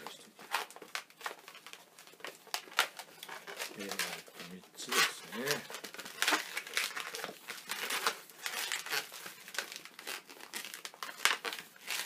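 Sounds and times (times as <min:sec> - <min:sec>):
balloons rubbing and squeaking: 0:00.0 - 0:12.0.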